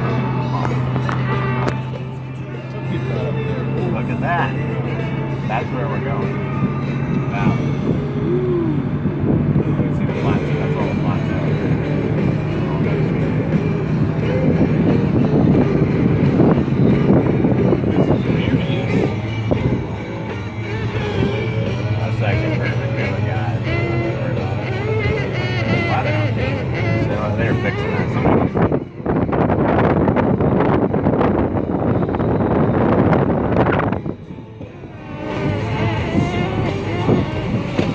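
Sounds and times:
engine and road hum: 0:00.0 - 0:37.9
music in car cabin: 0:00.0 - 0:37.9.

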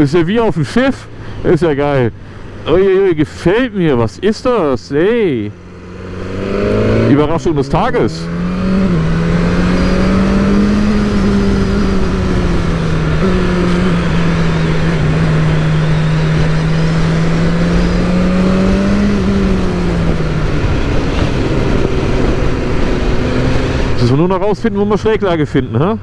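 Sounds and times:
motorcycle engine running: 0:05.5 - 0:24.0
wind noise: 0:06.1 - 0:24.0.

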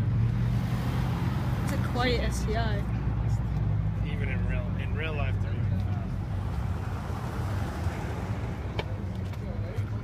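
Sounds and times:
car engine rumbling: 0:00.0 - 0:10.0
car passing by: 0:00.3 - 0:03.4, 0:06.2 - 0:09.3.

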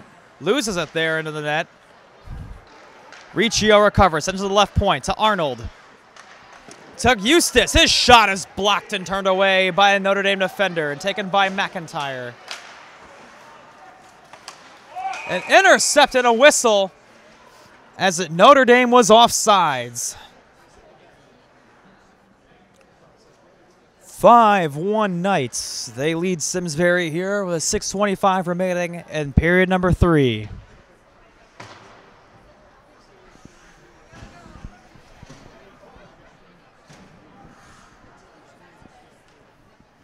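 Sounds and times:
faint arena background noise: 0:00.0 - 0:40.0
skates and sticks on ice: 0:05.8 - 0:07.0.

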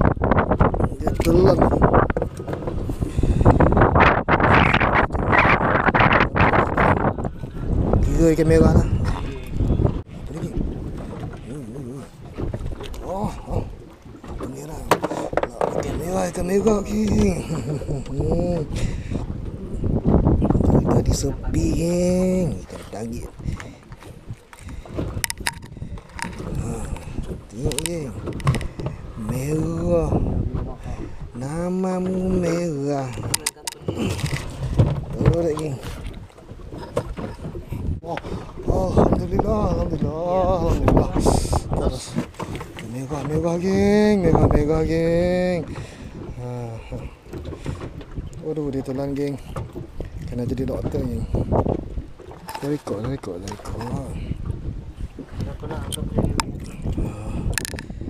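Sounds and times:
low rumble of boat noise: 0:00.0 - 0:58.0
light knocks on boat: 0:14.3 - 0:16.0.

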